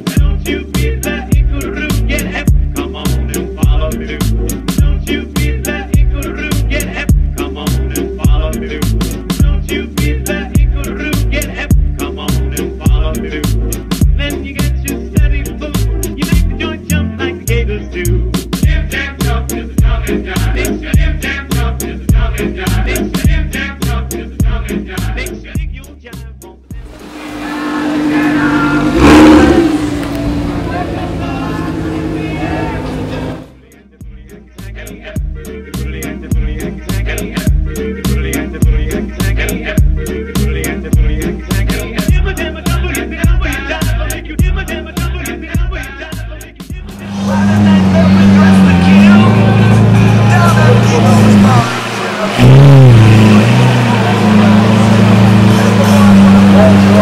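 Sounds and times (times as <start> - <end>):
car engine revving hard: 26.8 - 33.6, 46.9 - 57.0.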